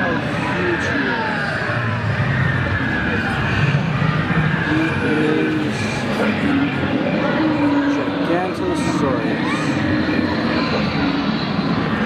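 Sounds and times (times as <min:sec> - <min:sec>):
exhibition hall crowd din: 0:00.0 - 0:12.0.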